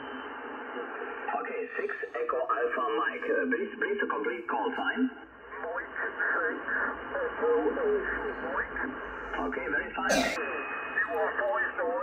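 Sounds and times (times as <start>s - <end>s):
radio band noise hiss: 0.0s - 12.0s
thin radio speech through speaker: 1.2s - 12.0s.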